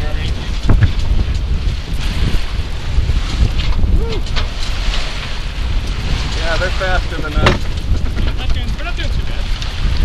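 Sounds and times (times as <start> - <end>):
water rushing along boat hull: 0.0 - 10.0
wind buffeting microphone: 0.0 - 10.0.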